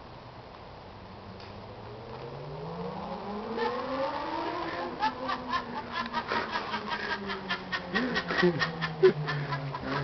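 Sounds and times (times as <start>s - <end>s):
vehicle engine accelerating: 1.2s - 10.0s.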